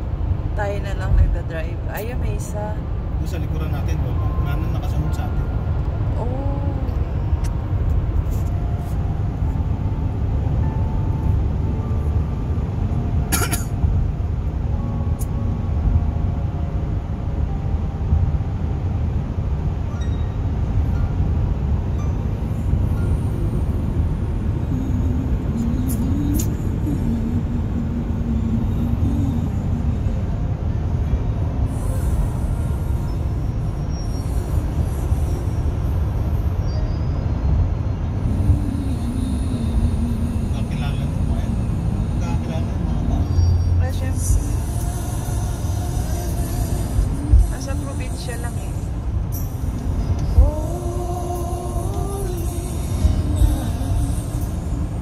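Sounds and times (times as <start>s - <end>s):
car cabin road and engine noise: 0.0s - 55.0s.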